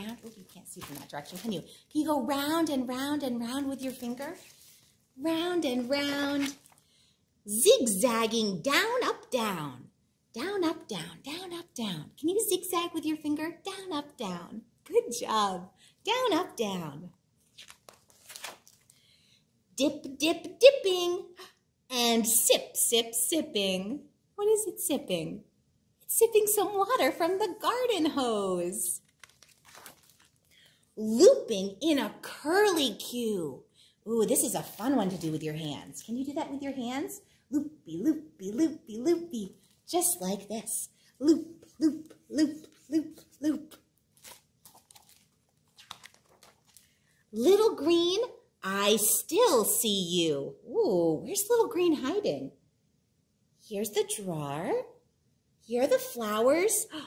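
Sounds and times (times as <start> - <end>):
book page turning: 0.0 - 1.7, 3.4 - 5.0, 5.7 - 6.9, 17.4 - 19.0, 29.0 - 30.7, 34.6 - 36.0, 41.6 - 47.0.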